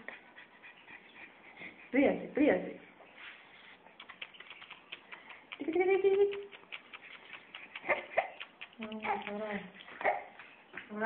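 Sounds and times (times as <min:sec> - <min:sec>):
faint irregular clicks: 0:03.8 - 0:10.9.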